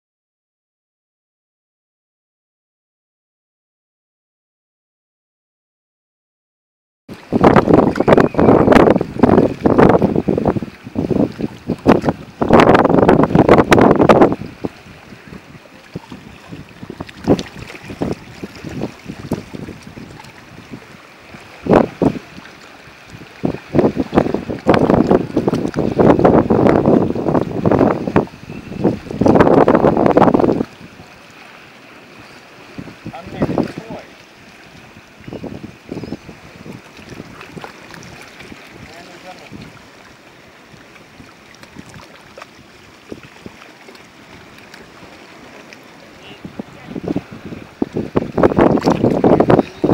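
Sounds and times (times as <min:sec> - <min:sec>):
small waves washing: 0:07.1 - 0:49.9
wind buffeting microphone: 0:07.1 - 0:49.9.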